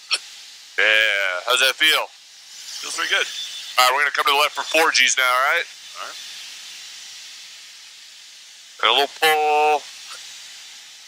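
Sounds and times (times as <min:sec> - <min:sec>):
cockpit intercom hiss: 0:00.7 - 0:06.5, 0:08.8 - 0:10.3
man talking: 0:00.8 - 0:02.1, 0:02.8 - 0:06.2, 0:08.8 - 0:09.8.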